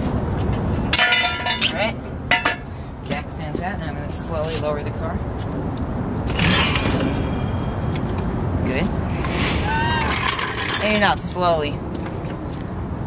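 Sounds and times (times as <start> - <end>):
brief hiss: 9.2 - 9.7.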